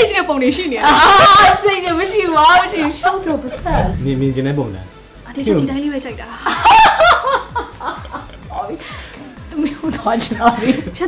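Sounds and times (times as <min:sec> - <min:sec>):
people laughing: 0:02.5 - 0:04.1, 0:06.4 - 0:11.0.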